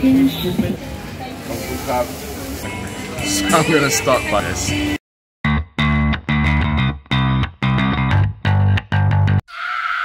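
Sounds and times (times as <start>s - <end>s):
music: 2.5s - 9.4s.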